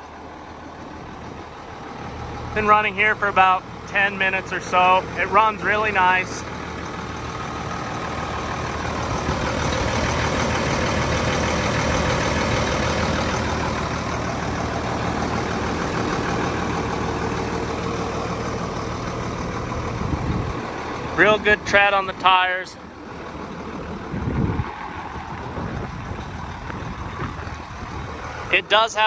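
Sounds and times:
tractor diesel engine running: 0.0 - 29.0.

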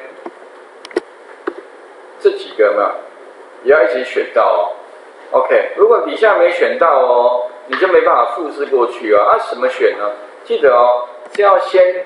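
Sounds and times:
faint electrical buzz: 0.0 - 12.0.

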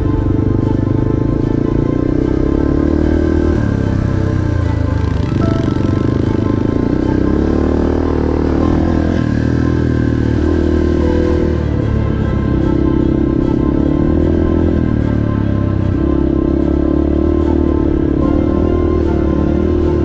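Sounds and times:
dirt bike engine revving: 0.0 - 20.0
music playing: 0.0 - 20.0.

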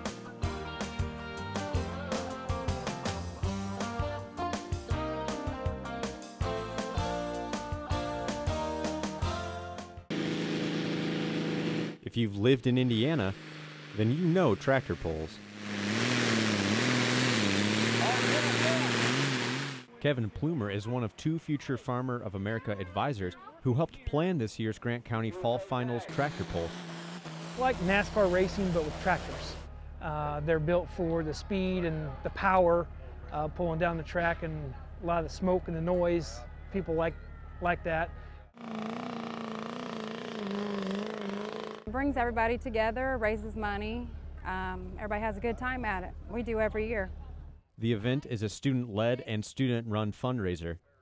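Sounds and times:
tractor engine roaring under load: 10.1 - 12.1, 12.8 - 19.9, 26.1 - 30.0, 38.6 - 41.9.

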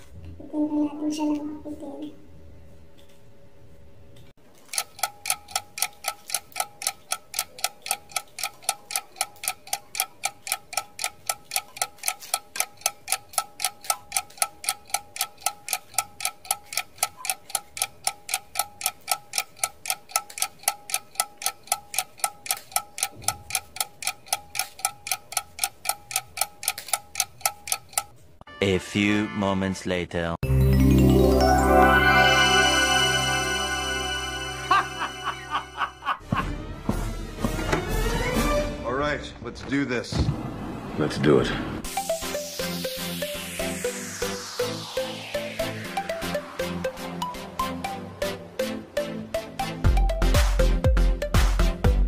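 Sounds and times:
clock ticking: 4.5 - 28.2, 32.8 - 36.2, 41.8 - 52.0.

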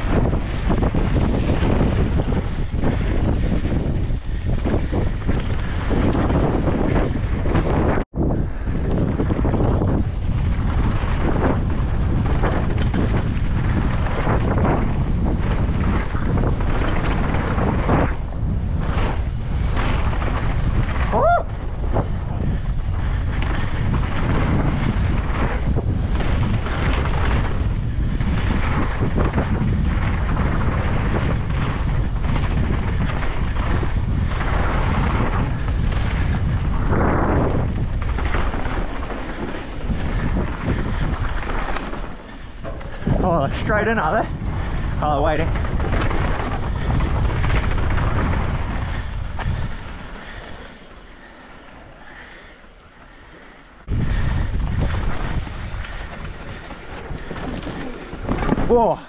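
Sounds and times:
bike tyres rolling over dirt: 0.0 - 59.0
wind on microphone: 0.0 - 59.0.

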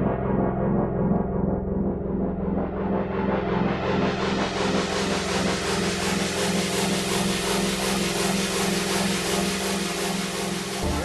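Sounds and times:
gritty pulsing synthesizer drone: 0.0 - 11.0.

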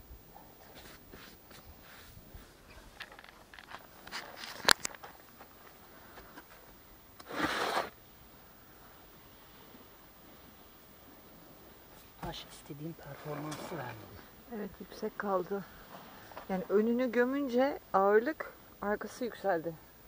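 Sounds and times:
stones and board scraping: 13.1 - 14.2.

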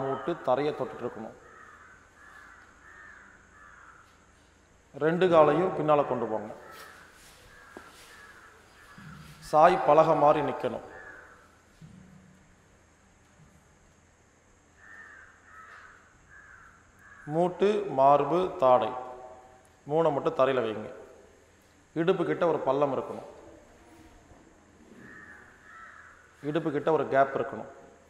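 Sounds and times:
faint bird calls: 0.0 - 4.6, 6.6 - 9.7, 10.4 - 12.5, 14.7 - 17.4, 23.1 - 26.6
low background hum: 0.0 - 28.0.

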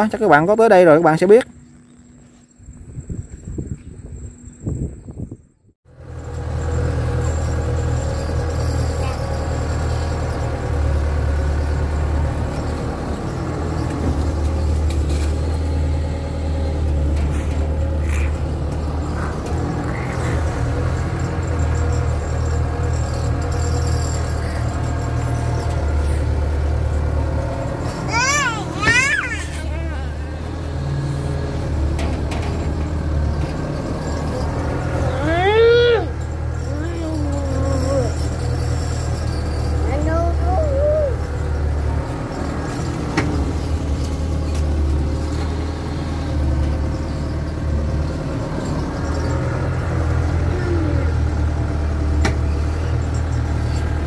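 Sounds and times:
diesel engine droning: 0.0 - 54.0.

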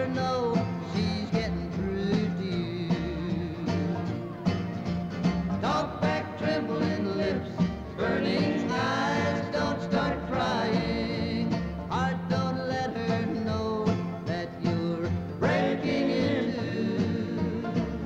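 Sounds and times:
person singing: 0.0 - 4.1
bluegrass band playing: 0.0 - 18.0.

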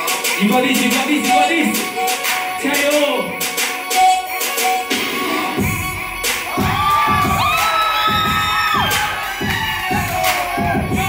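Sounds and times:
crowd cheering and calling out: 0.0 - 11.0
dance music with steady beat: 0.0 - 11.0.

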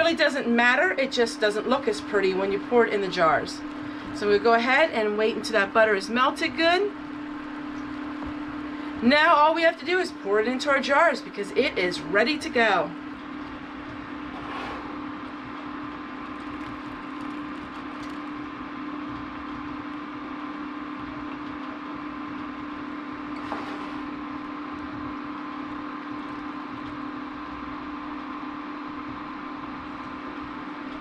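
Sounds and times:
mechanical hum with fan whoosh: 0.0 - 31.0.

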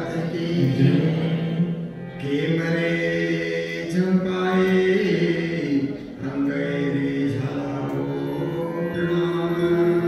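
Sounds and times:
harmonium: 0.0 - 10.0.

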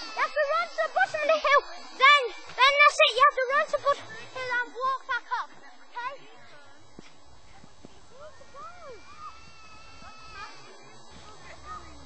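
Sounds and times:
distant voices calling out: 0.0 - 12.0.

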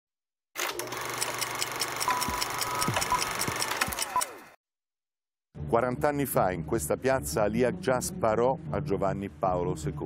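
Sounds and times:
rapid clock-like ticking: 1.2 - 4.3
held electronic tone: 2.1 - 4.4.

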